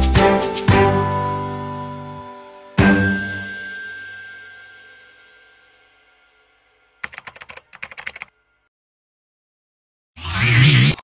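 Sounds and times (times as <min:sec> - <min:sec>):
background music chord: 0:00.0 - 0:07.0
keyboard typing clicks: 0:07.0 - 0:08.3.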